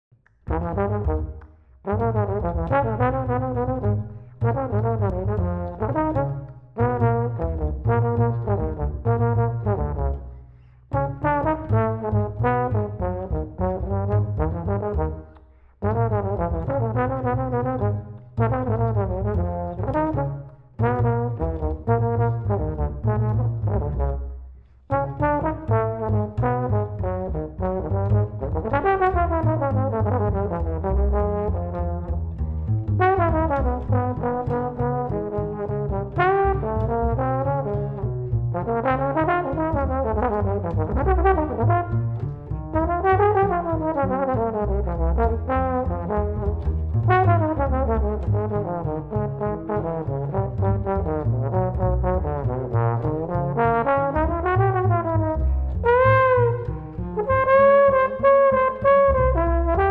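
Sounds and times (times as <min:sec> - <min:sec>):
plucked upright bass: 0:00.1 - 0:59.9
trombone melody: 0:00.5 - 0:10.3, 0:10.9 - 0:59.9.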